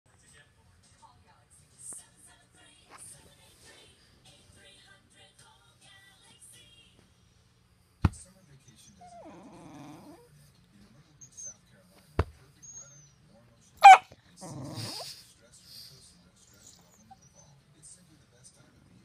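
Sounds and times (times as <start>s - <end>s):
dog growling: 9.0s - 10.3s, 13.8s - 15.3s
dog barking: 13.8s - 14.2s.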